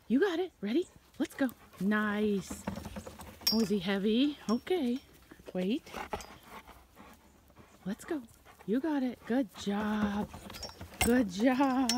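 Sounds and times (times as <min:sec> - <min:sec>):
woman speaking: 0:00.0 - 0:02.7, 0:03.5 - 0:06.0, 0:07.8 - 0:10.4, 0:11.0 - 0:11.9
dog panting: 0:00.8 - 0:02.5, 0:05.6 - 0:11.9.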